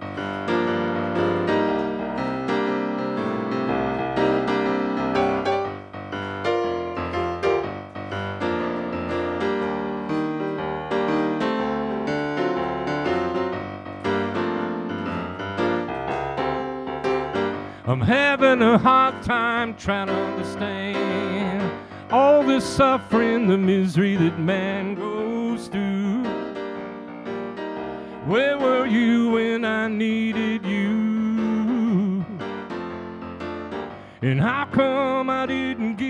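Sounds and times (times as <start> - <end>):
electronic keyboard piano chords: 0.0 - 36.0
man singing: 17.8 - 26.6, 28.2 - 32.6, 34.2 - 36.0.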